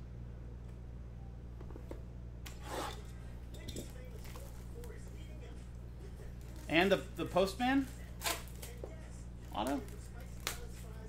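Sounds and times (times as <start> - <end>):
low steady hum: 0.0 - 11.0
cellophane wrap rustling: 7.8 - 8.8, 9.4 - 11.0.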